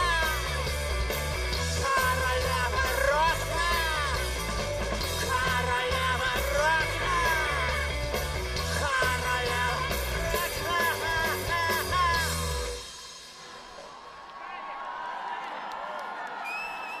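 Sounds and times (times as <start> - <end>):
singer yelling: 0.0 - 0.7, 1.6 - 8.0, 8.7 - 12.7
live rock band playing: 0.0 - 13.4
crowd cheering: 8.9 - 17.0.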